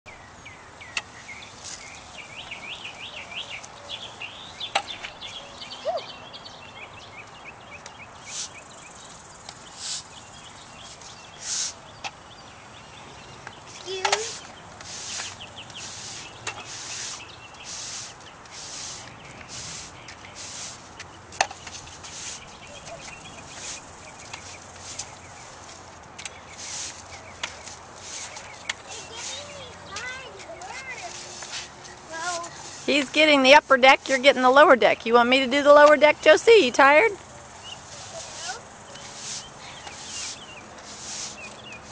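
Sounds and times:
songbirds chirping and singing: 0.1 - 41.9
steady outdoor hiss: 0.1 - 41.9
broom scraping concrete: 1.6 - 2.0, 8.2 - 8.8, 9.6 - 11.8, 13.7 - 34.6, 35.8 - 41.9.

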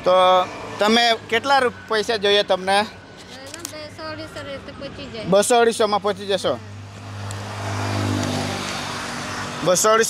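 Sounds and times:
vehicle passing with tyre noise: 0.0 - 3.2, 4.3 - 10.0.

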